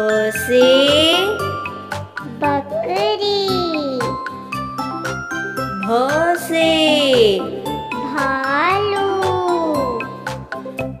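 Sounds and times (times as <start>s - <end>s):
children's song music: 0.0s - 11.0s.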